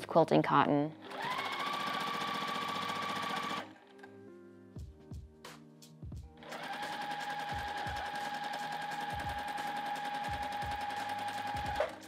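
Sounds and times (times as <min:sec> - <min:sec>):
sewing machine stitching: 0:01.0 - 0:03.7, 0:06.4 - 0:12.0.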